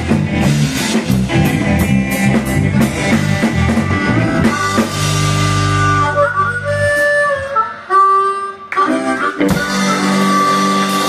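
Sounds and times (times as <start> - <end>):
blues harmonica: 0.0 - 11.0
live band playing: 0.0 - 11.0.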